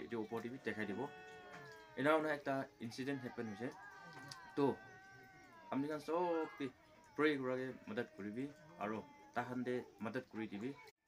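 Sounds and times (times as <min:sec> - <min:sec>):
faint steady high tone: 0:00.0 - 0:10.9
man speaking: 0:02.0 - 0:03.8, 0:05.7 - 0:10.8.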